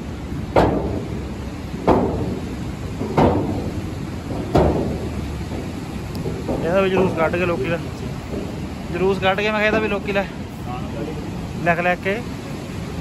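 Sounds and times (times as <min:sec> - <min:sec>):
footsteps on steel footbridge: 0:00.0 - 0:10.5
river rushing: 0:00.0 - 0:13.0.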